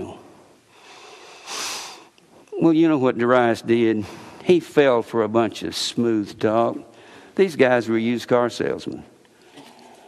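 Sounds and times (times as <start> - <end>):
man sharp breath through nose: 0.8 - 2.2.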